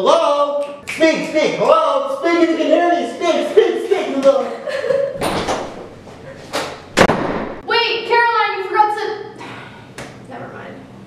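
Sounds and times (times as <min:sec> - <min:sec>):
door slamming shut: 0:05.2 - 0:07.6.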